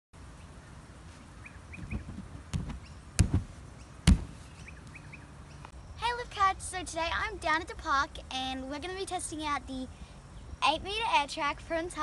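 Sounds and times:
birds chirping: 0:00.3 - 0:07.6
thumps on inflatable air track: 0:02.0 - 0:03.5, 0:04.1 - 0:04.4.

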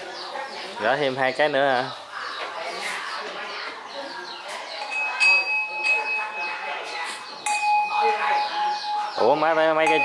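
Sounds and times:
small metal bell ringing: 0:04.8 - 0:06.8, 0:07.4 - 0:10.0.

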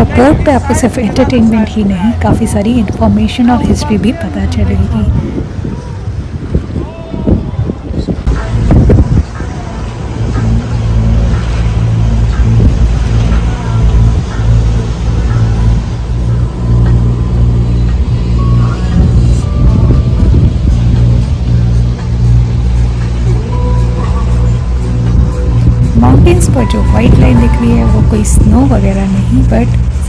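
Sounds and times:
boat engine droning: 0:00.0 - 0:30.0.

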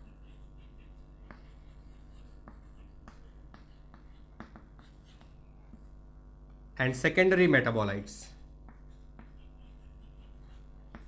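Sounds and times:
chalk scratching on chalkboard: 0:00.0 - 0:06.0, 0:08.4 - 0:11.0
chalk tap: 0:01.2 - 0:05.9, 0:08.7 - 0:11.0.

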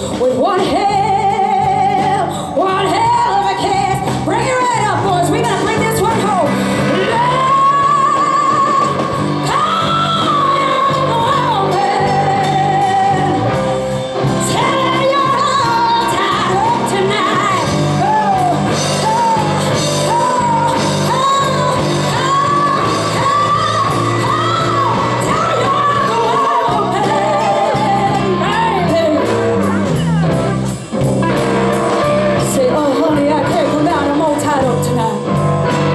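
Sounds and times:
woman singing: 0:00.0 - 0:30.4, 0:32.0 - 0:35.4
bass guitar: 0:00.0 - 0:35.9
drums: 0:00.0 - 0:35.9
electric guitars: 0:00.0 - 0:35.9.

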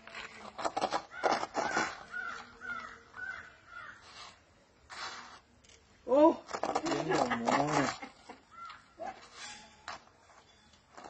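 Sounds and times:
crow cawing: 0:01.1 - 0:04.0.

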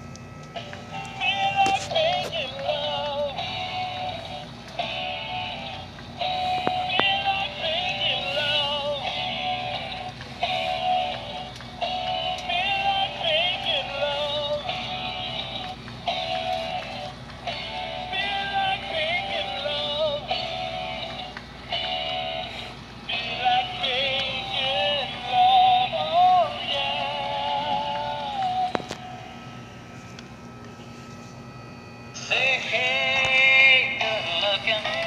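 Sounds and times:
tinny electronic toy song: 0:23.1 - 0:28.8.

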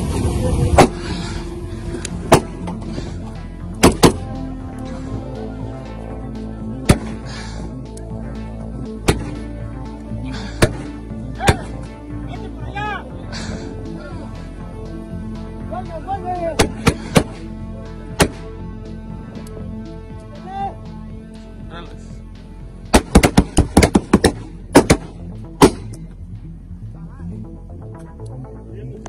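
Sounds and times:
background music: 0:00.0 - 0:29.0
gunshot crack: 0:02.3 - 0:02.5, 0:03.8 - 0:04.2, 0:09.0 - 0:09.4, 0:18.2 - 0:18.4, 0:22.9 - 0:25.9.

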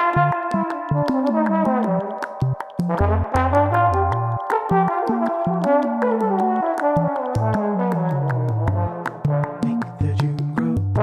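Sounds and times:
low bass line: 0:00.0 - 0:05.8, 0:07.0 - 0:11.0
trombone solo: 0:00.0 - 0:10.0
ticking percussion: 0:00.0 - 0:11.0.

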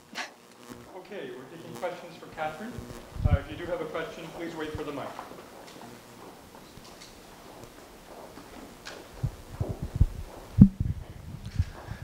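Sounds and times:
low thumps and bumps: 0:02.7 - 0:03.8, 0:07.4 - 0:12.0.

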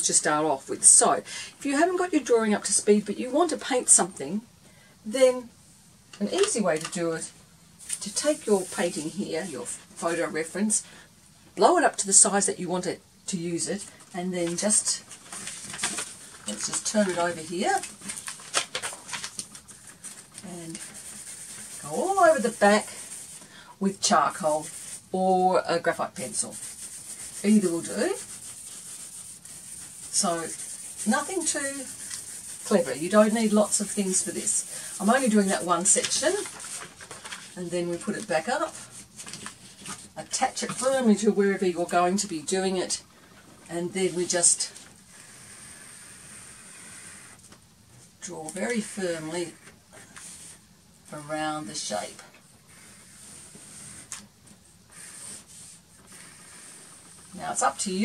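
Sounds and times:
paper crackling and tapping: 0:06.2 - 0:07.0, 0:14.4 - 0:23.5, 0:26.2 - 0:41.2
pencil scratching on paper: 0:08.0 - 0:09.5, 0:19.7 - 0:23.4, 0:24.0 - 0:36.8, 0:44.0 - 0:47.4, 0:51.2 - 0:54.2, 0:54.9 - 0:58.0.

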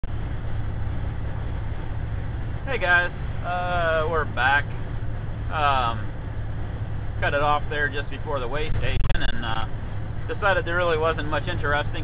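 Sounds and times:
low hum: 0:00.0 - 0:12.0
truck engine and road noise: 0:00.0 - 0:12.0.

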